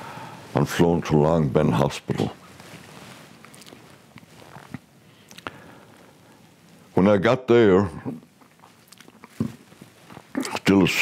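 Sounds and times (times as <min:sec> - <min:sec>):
faint room tone hiss: 0:00.0 - 0:11.0.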